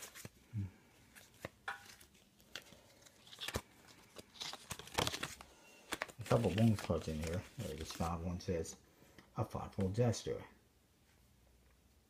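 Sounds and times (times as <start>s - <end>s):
playing cards snapping: 1.2s - 8.1s.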